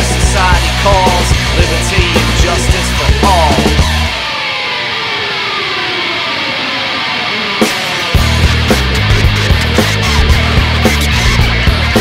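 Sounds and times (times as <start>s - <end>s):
sustained distorted guitar wash: 0.0s - 12.0s.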